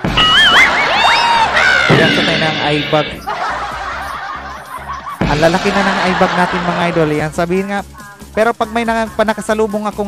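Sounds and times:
man laughing: 3.1s - 7.3s.

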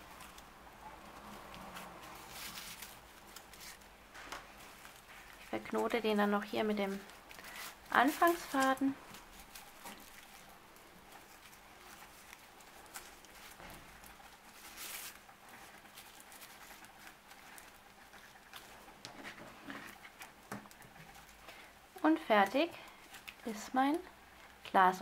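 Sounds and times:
paper yarn rustling: 0.0s - 25.0s.

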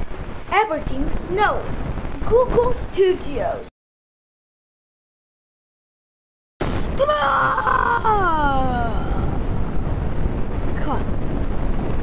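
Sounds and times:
steady loud noise: 0.0s - 3.7s, 6.6s - 12.0s
cartoon creature high-pitched yell: 7.0s - 9.0s.

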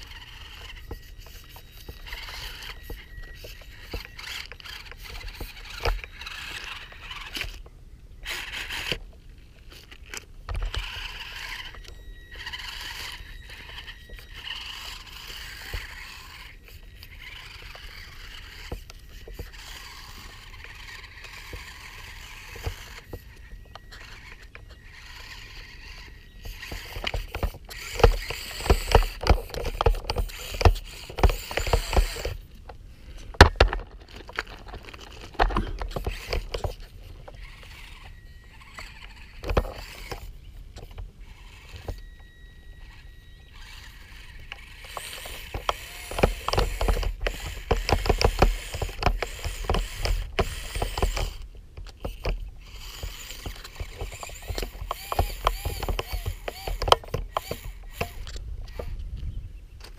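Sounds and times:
gravel crunching and clicking: 0.0s - 59.9s
small electric motor whine: 0.0s - 59.9s.

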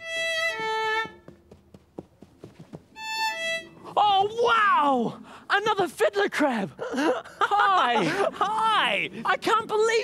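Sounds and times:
violin: 0.0s - 1.6s, 2.7s - 4.0s.

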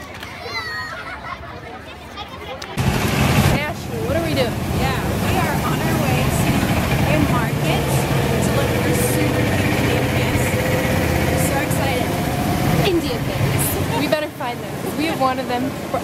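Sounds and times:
street traffic: 0.0s - 16.0s
voices: 0.0s - 16.0s
vehicle engine running: 2.8s - 14.9s.

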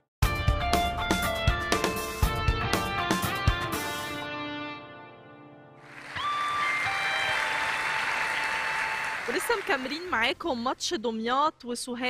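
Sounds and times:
theme music: 5.8s - 9.9s
studio audience applause: 5.8s - 10.3s.

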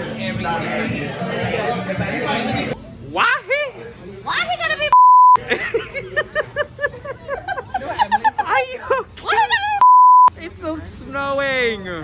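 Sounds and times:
censor bleep: 4.9s - 5.4s, 9.8s - 10.3s.

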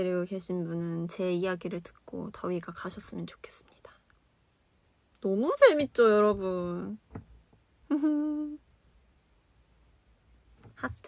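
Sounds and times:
woman humming: 7.8s - 8.7s.

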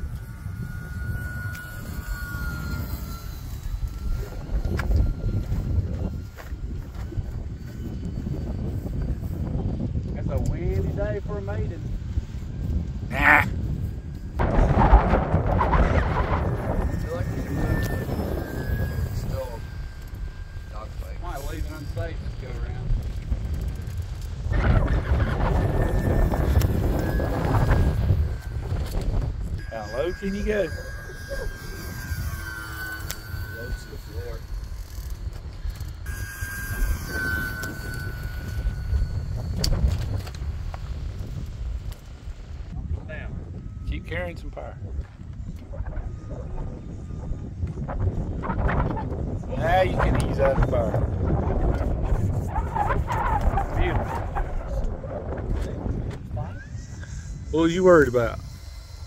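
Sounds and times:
model plane propeller whine: 0.0s - 59.0s
wind buffeting microphone: 0.0s - 59.0s.

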